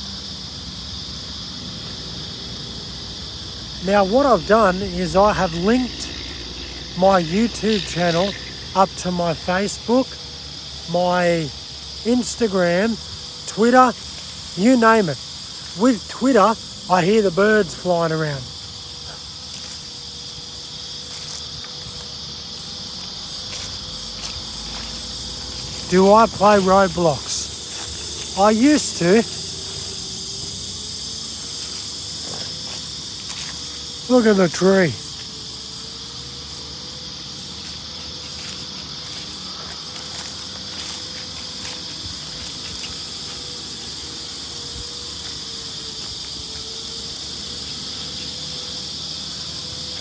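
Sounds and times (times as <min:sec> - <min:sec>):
high-pitched insect drone: 0:00.0 - 0:50.0.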